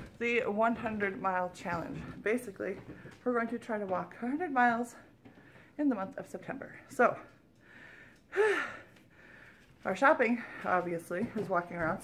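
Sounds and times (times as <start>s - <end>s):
soft breathing: 4.9s - 5.8s, 7.2s - 11.5s
woman gasping: 7.7s - 9.7s.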